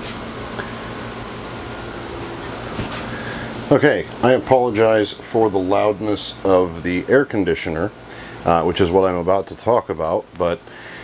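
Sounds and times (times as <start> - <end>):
air conditioner running: 0.0 - 11.0.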